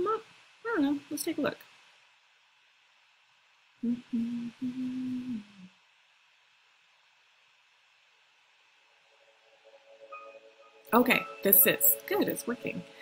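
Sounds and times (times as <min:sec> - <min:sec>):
woman humming: 0:03.8 - 0:05.8.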